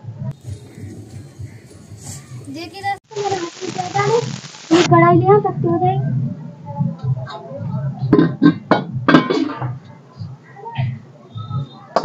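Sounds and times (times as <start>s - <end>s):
metal cooking pots clanking: 8.5s - 9.7s.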